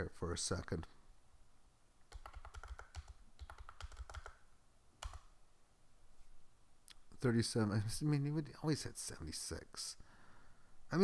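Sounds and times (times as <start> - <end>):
keyboard typing: 2.1 - 4.4, 5.0 - 5.3.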